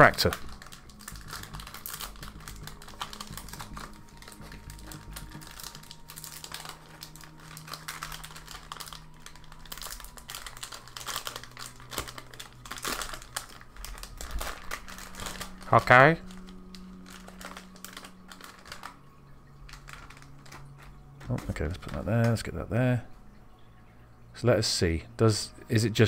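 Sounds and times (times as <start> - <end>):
wrapper crackling as torn open: 0.0 - 22.5.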